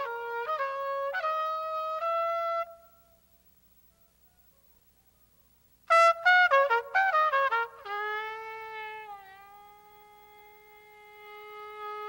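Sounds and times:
jazz trumpet: 0.0 - 2.8, 5.9 - 12.0.

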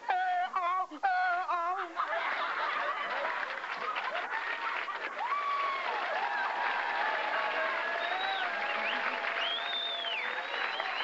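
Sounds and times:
audience applauding: 2.3 - 11.0.

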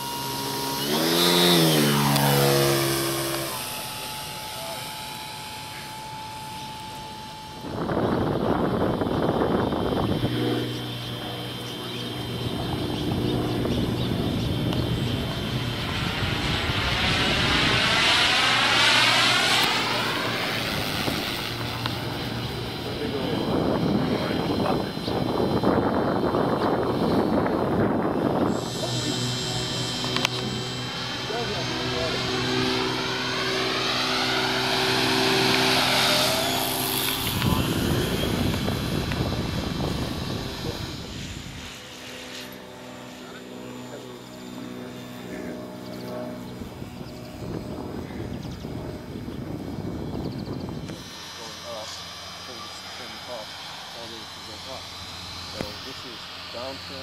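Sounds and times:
model plane motor whining: 0.0 - 57.0.

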